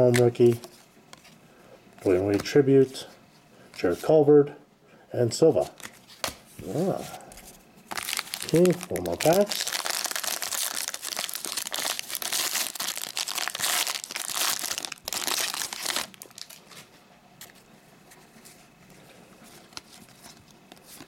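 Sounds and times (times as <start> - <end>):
cards clicking and rustling: 2.1 - 2.6, 7.9 - 16.8
foil wrapper tearing and crinkling: 7.9 - 16.8.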